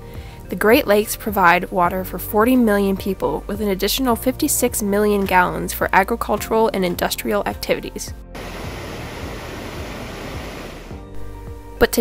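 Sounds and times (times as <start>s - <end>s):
background music: 0.0s - 12.0s
water rushing over a weir: 8.4s - 10.9s.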